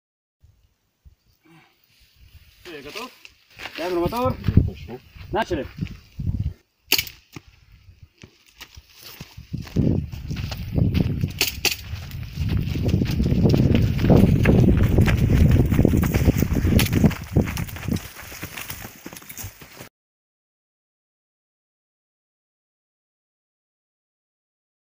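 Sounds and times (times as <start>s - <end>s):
footsteps crunching on gravel: 2.6s - 6.3s, 8.2s - 19.9s
sharp cracks: 6.9s - 7.4s.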